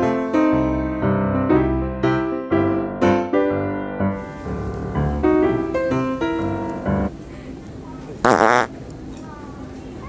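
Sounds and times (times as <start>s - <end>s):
fart-noise toy: 8.2s - 8.7s.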